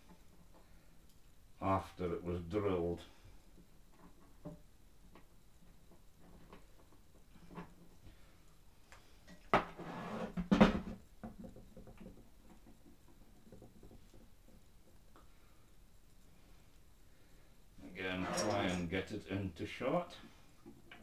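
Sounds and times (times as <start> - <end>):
scraping and clattering: 17.8 - 18.9.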